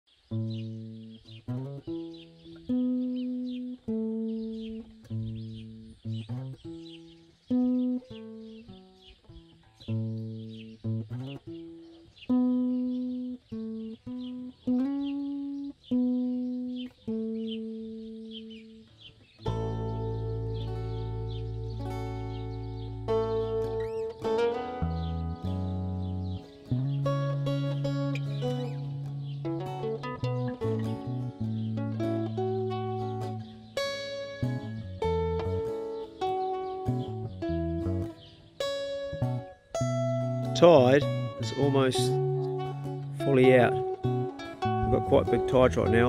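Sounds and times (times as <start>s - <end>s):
faint high chirping: 0.1s - 46.0s
plucked guitar notes: 0.1s - 46.0s
sustained guitar chord: 19.4s - 46.0s.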